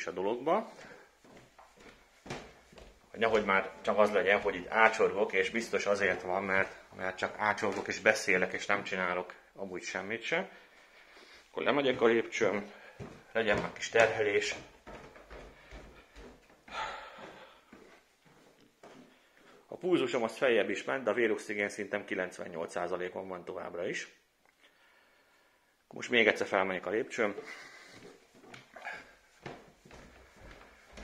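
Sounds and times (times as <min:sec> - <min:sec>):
footsteps climbing stairs: 0:00.7 - 0:09.0, 0:11.9 - 0:19.6, 0:27.3 - 0:31.0.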